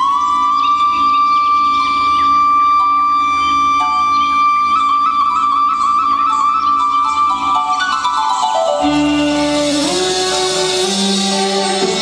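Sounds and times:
flute holding long notes: 0.0 - 12.0
steady drone: 0.0 - 12.0.

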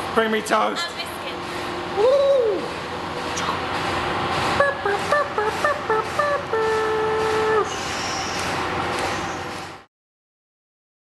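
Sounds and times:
steady machinery hum: 0.0 - 9.9.

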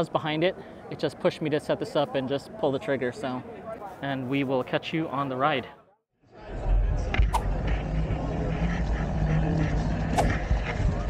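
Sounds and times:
wind buffeting microphone: 7.3 - 11.0.

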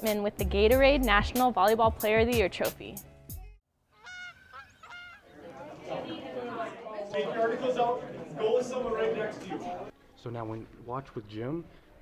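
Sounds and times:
short bird calls: 3.9 - 5.4.

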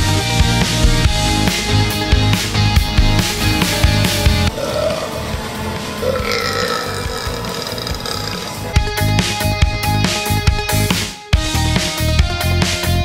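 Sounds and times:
rock music: 0.0 - 13.0
man burping loudly: 4.5 - 8.9.

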